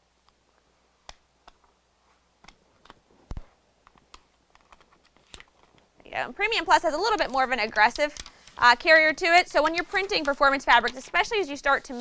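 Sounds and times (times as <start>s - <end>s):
plastic sheet clicks and crinkles: 2.4s - 5.9s, 6.9s - 12.0s.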